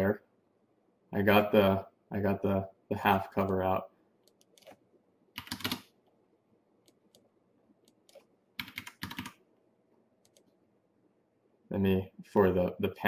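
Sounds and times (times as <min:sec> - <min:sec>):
computer keyboard typing: 0:04.2 - 0:04.8, 0:05.4 - 0:05.9, 0:06.9 - 0:09.4, 0:10.2 - 0:10.5.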